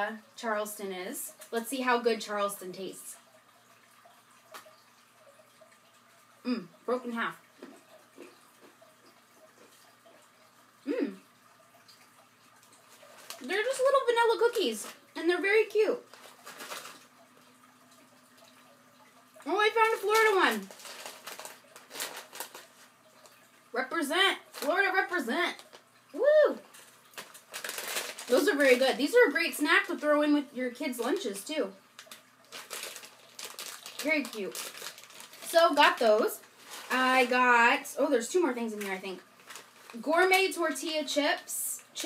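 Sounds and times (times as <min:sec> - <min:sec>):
person humming: 0:10.9 - 0:11.2
plastic pouch crinkling: 0:12.6 - 0:15.0, 0:16.0 - 0:17.2, 0:19.9 - 0:23.4, 0:26.6 - 0:29.2, 0:32.0 - 0:37.4, 0:38.7 - 0:41.2.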